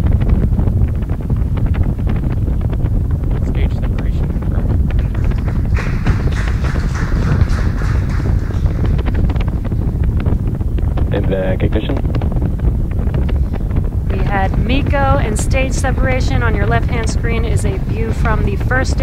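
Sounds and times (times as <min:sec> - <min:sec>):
hissing crackly noise: 0:00.0 - 0:19.0
wind buffeting microphone: 0:00.0 - 0:19.0.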